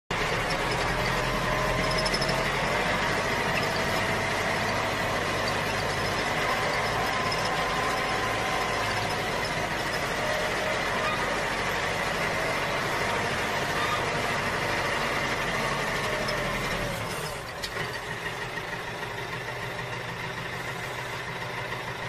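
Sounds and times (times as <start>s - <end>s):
thin whining tones: 0.2s - 17.7s.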